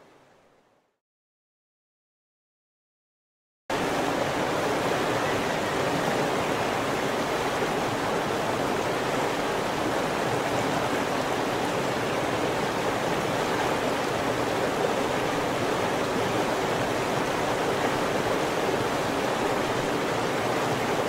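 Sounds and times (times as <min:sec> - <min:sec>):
river water rushing: 0:03.7 - 0:21.0.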